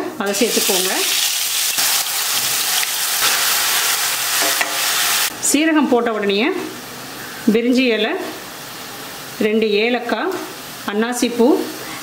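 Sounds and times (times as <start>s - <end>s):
paste sizzling in hot oil: 0.3s - 5.3s.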